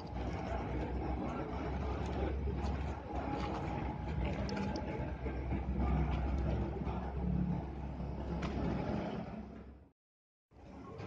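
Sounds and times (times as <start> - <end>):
outdoor background noise: 0.0 - 9.9, 10.5 - 11.0.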